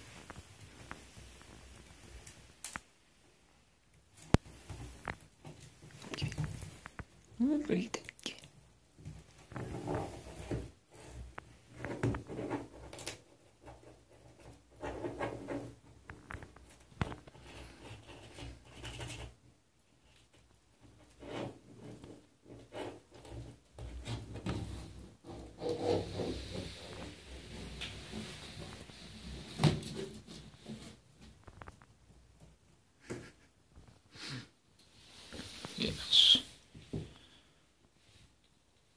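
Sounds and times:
scrapes and taps on bathtub: 32.4 - 33.9.

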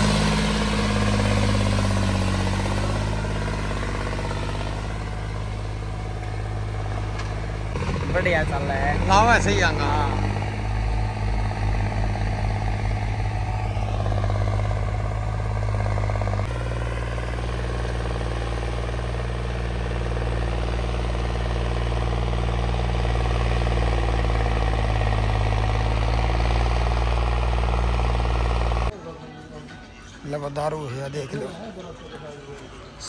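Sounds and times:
tractor diesel engine running: 0.0 - 29.0.

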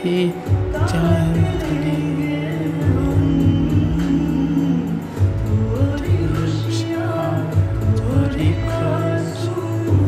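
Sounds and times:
instrumental backing: 0.0 - 10.0
man singing a slow ballad: 0.0 - 10.0.

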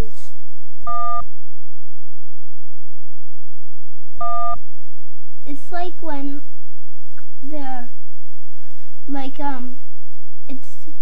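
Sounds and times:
short electronic beeps: 0.9 - 1.2, 4.2 - 4.6.

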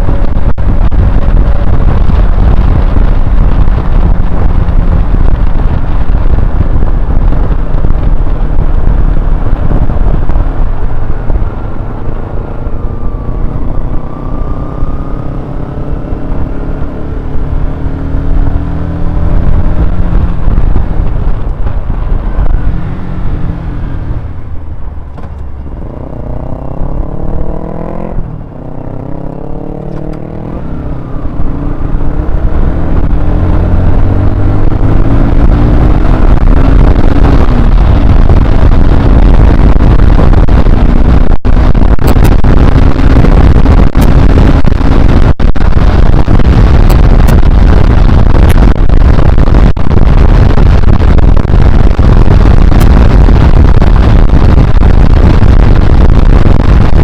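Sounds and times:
motorcycle engine: 0.0 - 57.0
wind noise on microphone: 0.0 - 57.0.

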